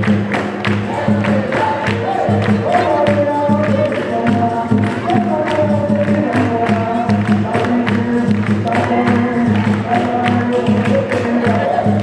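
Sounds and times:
percussion: 0.0s - 12.0s
rhythmic hand-clapping: 0.0s - 12.0s
voices singing together: 0.4s - 12.0s.

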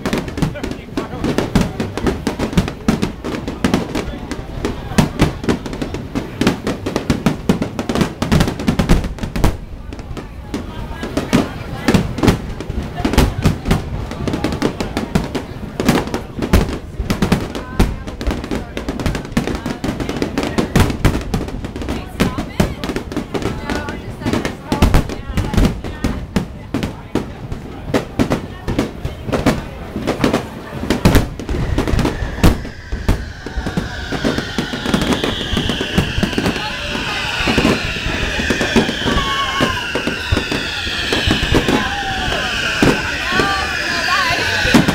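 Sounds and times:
fireworks bangs and booms: 0.0s - 44.9s
high tone sliding down: 31.1s - 44.9s.

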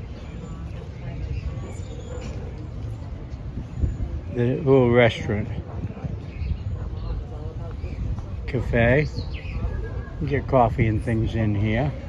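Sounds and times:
faint voices: 0.0s - 12.0s
low street rumble: 0.0s - 12.0s.

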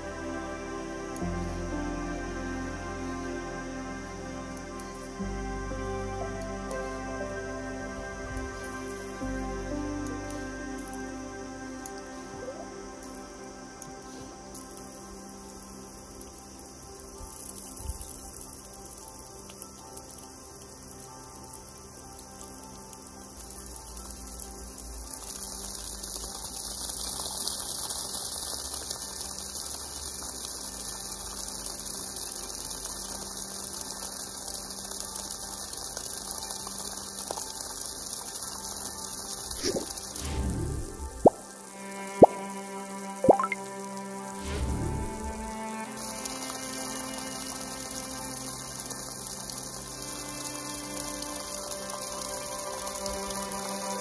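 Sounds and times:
background music: 0.0s - 54.0s
water splashing onto wet ground: 13.0s - 54.0s.

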